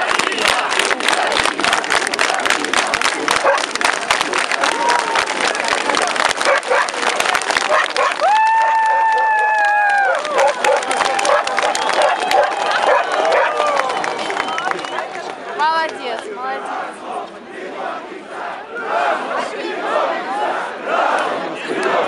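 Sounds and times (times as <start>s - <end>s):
sharp claps and clicks: 0.0s - 16.3s
crowd voices din: 0.0s - 22.0s.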